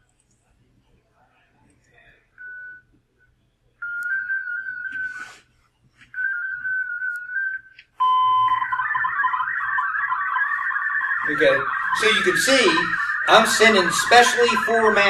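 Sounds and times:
steady radio tones: 8.0s - 15.0s
warbling digital data signal: 8.4s - 15.0s.

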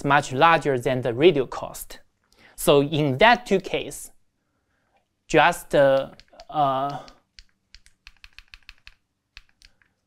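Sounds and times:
laptop keys clicking: 5.9s - 10.0s.

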